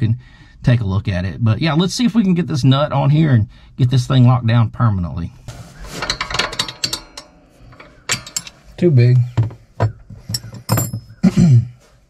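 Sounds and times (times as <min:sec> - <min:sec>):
metal nut clicking and rattling: 0:06.0 - 0:11.2.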